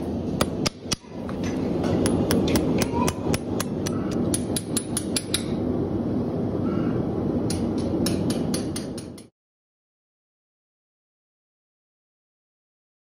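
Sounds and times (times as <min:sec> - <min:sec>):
steady background noise: 0:00.0 - 0:09.3
hammer striking horseshoe nails: 0:00.4 - 0:05.5, 0:07.5 - 0:09.3.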